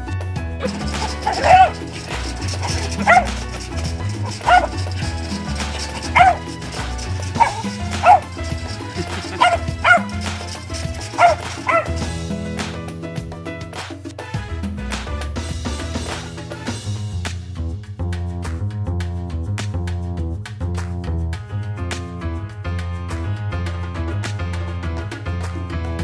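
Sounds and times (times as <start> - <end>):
background music: 0.0 - 26.0
dog barking: 0.6 - 12.1.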